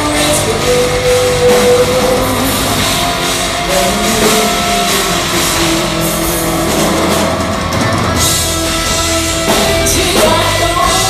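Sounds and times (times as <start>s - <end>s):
bass guitar: 0.0s - 11.0s
distorted electric guitars: 0.0s - 11.0s
live metal band playing: 0.0s - 11.0s.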